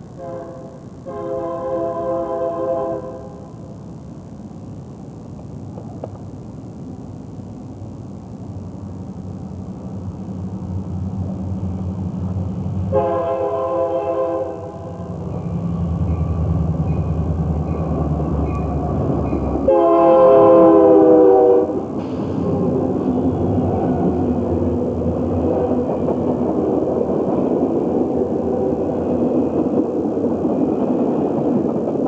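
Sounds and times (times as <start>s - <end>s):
locomotive engine rumble: 0.0s - 32.0s
train horn blasts: 0.2s - 3.5s, 12.9s - 15.5s, 16.9s - 21.9s.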